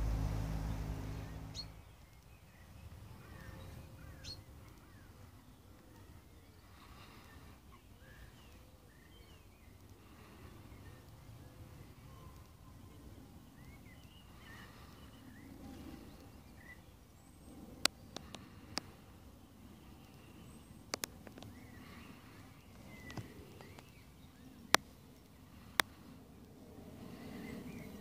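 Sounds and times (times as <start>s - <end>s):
small birds chirping: 0.0s - 28.0s
sharp clicks: 20.9s - 21.6s.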